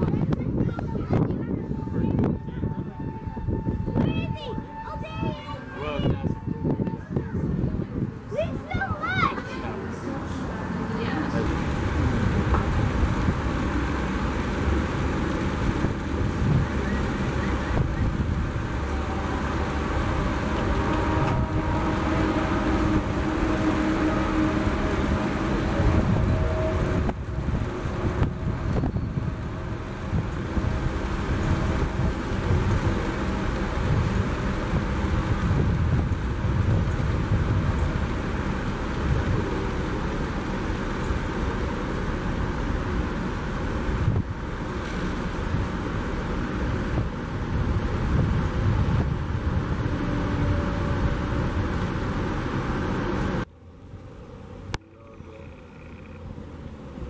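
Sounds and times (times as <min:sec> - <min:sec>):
low rumbling background noise: 0:00.0 - 0:57.0.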